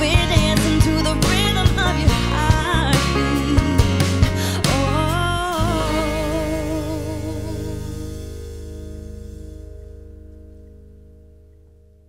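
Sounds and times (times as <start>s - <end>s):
band chord ringing out: 1.8s - 12.0s.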